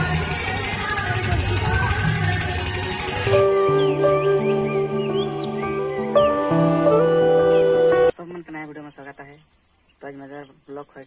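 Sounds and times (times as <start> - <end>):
high-pitched insect drone: 7.9 - 11.0.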